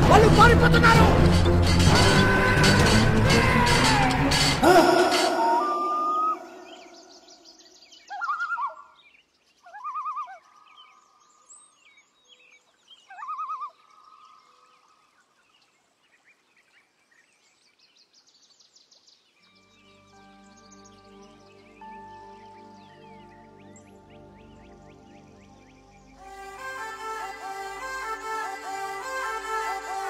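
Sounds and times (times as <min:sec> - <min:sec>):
warbling bird calls: 0:01.3 - 0:17.2
faint high chirping: 0:05.0 - 0:09.0.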